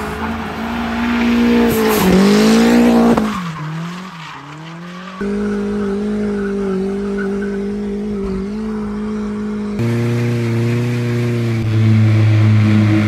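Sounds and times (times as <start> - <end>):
car engine at high revs: 0.0 - 13.0
deeper steady engine note: 6.0 - 13.0.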